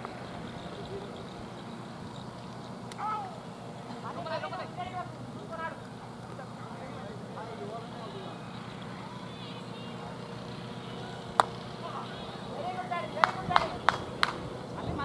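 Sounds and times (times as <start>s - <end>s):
players shouting calls: 7.2s - 14.8s.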